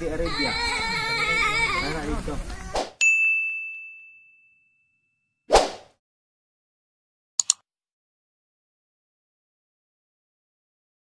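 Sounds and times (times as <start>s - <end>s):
bell-like ding: 3.0s - 5.4s.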